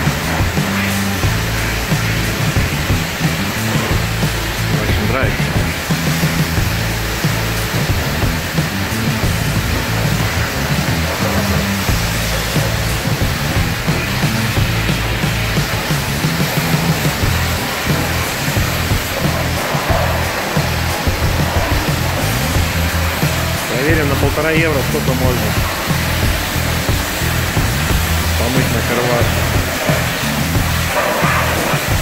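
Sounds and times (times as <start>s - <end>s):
music with stepping bass line: 0.0s - 32.0s
pressure washer spraying water: 0.0s - 32.0s.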